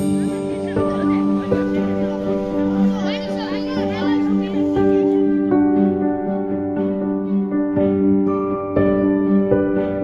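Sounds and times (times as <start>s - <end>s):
background music with held tones: 0.0s - 10.0s.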